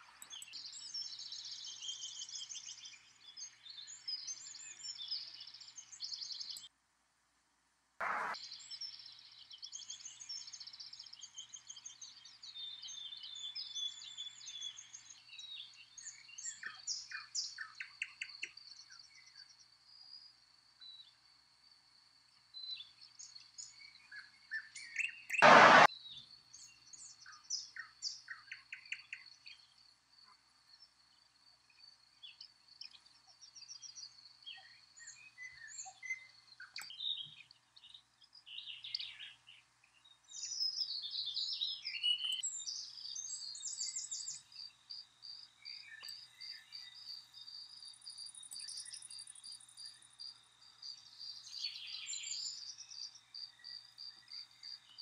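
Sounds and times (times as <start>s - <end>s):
birds chirping and trilling: 0.0s - 6.7s, 8.0s - 20.2s, 30.7s - 55.0s
loud burst of noise: 25.4s - 25.9s.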